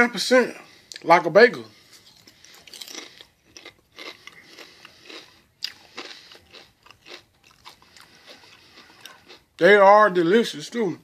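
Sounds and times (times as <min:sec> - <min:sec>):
person chewing crunchy chips: 0:01.7 - 0:09.8.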